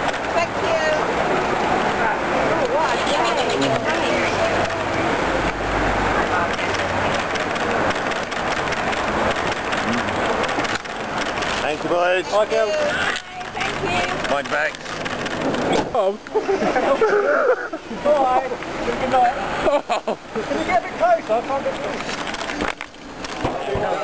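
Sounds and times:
people talking over one another: 0.0 - 19.6, 20.2 - 24.0
street noise: 0.0 - 24.0.

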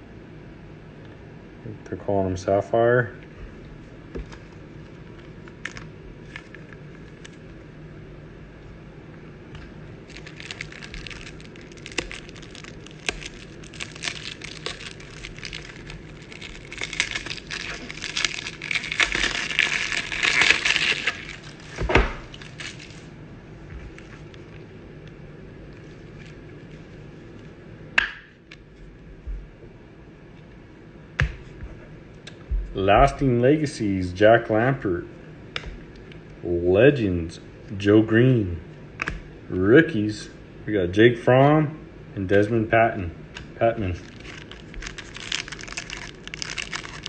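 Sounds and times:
thin plastic crinkling and clicking: 4.2 - 7.6, 9.6 - 23.1, 43.4 - 47.0.

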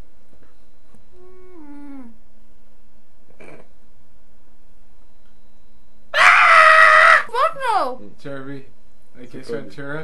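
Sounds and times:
faint hum: 0.0 - 10.0
whining cry: 6.2 - 7.9.

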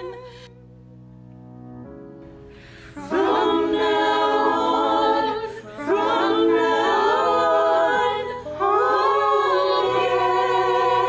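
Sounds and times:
women's choir singing a cappella: 2.8 - 11.0.

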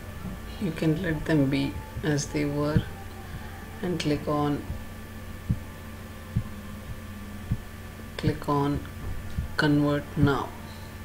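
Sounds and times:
dull low thumps: 0.0 - 9.6
low electrical hum: 0.0 - 11.0.

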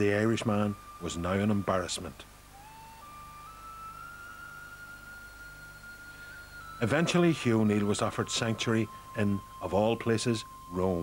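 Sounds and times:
sustained high note: 0.0 - 11.0.

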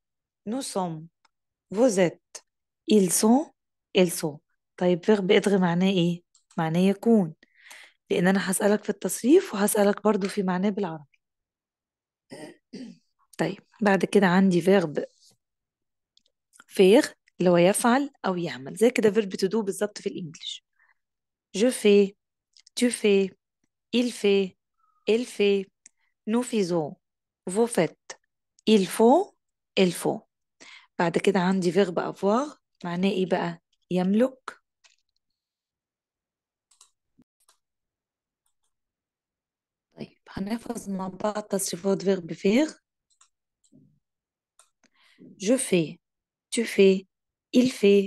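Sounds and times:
woman clearing her throat: 12.3 - 13.1.

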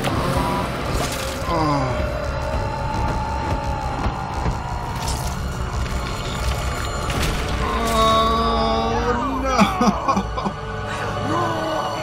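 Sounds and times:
tense soundtrack music: 0.0 - 12.0.

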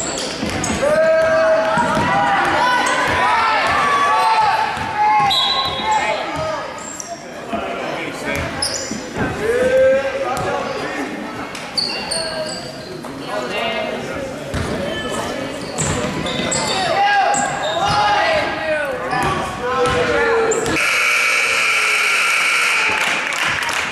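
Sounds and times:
people shouting: 0.8 - 6.3
scoreboard buzzer blare: 20.8 - 23.2.

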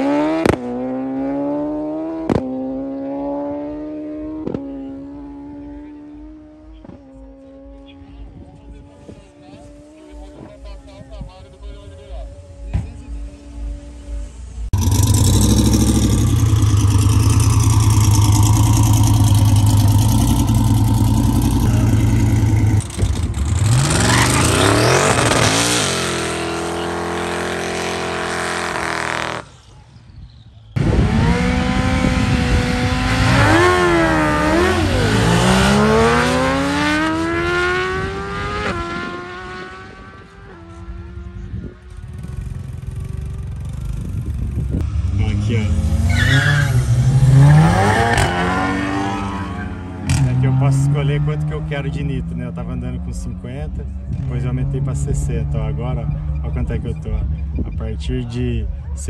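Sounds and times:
motorcycles revving and accelerating: 0.0 - 10.6, 14.7 - 29.6, 30.8 - 57.8
drag car engine revving: 14.7 - 29.4, 30.8 - 41.0.

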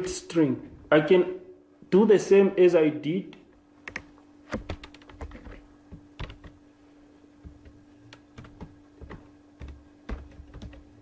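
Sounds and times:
faint electrical hum: 0.0 - 11.0
keyboard typing: 3.8 - 6.6, 7.4 - 11.0.

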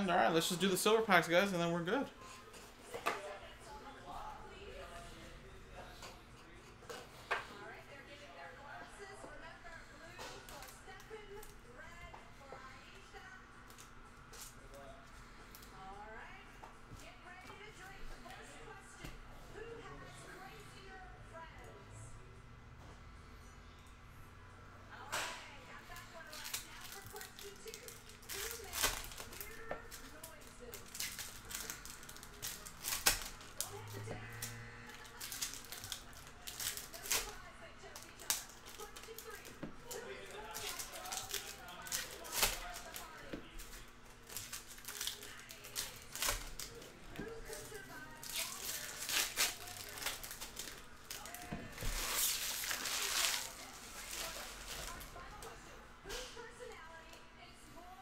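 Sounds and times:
foil packs tearing and crinkling: 25.9 - 55.2.

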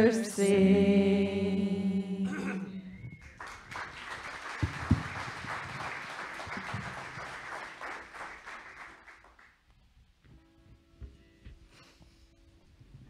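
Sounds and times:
congregation applauding: 3.1 - 9.6.

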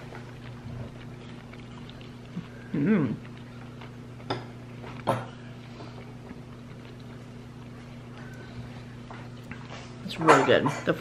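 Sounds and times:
steady low hum: 0.0 - 11.0
mouth sound eating soup: 1.0 - 3.8.

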